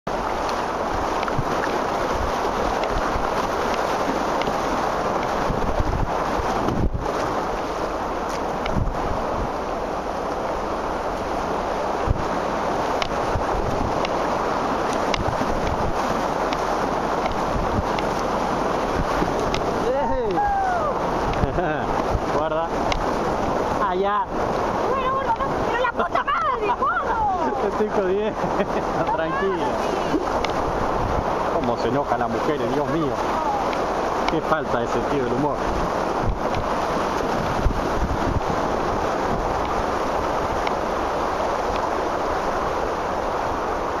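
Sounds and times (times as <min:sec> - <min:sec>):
whitewater rapids rushing: 0:00.1 - 0:44.0
wind on microphone: 0:00.1 - 0:44.0
light splashes or knocks: 0:12.0 - 0:20.4.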